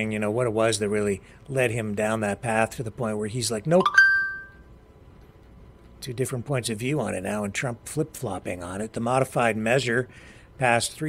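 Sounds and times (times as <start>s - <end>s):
bell-like ding: 3.8s - 4.6s.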